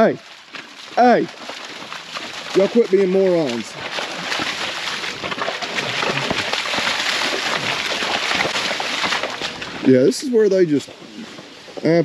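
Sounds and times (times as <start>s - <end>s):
boots squelching through mud: 0.2s - 11.6s.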